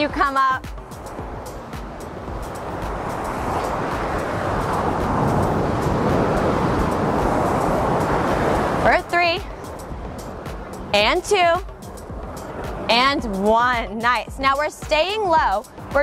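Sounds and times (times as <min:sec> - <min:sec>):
ocean surf breaking on rocks: 0:00.0 - 0:13.4.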